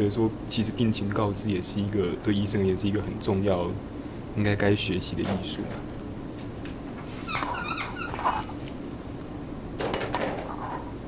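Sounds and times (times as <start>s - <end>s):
low room hum: 0.0s - 11.0s
marker squeaking on whiteboard: 7.1s - 8.6s.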